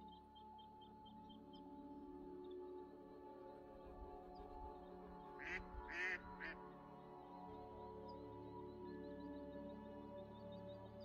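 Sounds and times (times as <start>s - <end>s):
ambient meditation music: 0.0s - 11.0s.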